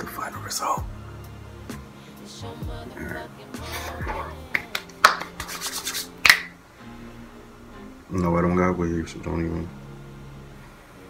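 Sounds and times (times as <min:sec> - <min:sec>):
soft background music: 0:00.0 - 0:11.0
hands clicking and rubbing: 0:04.5 - 0:06.6.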